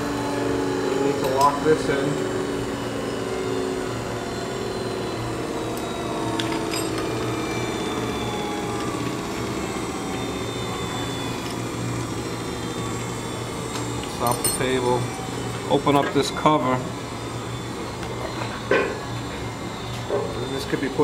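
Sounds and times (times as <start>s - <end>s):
grinder motor hum: 0.0s - 21.0s.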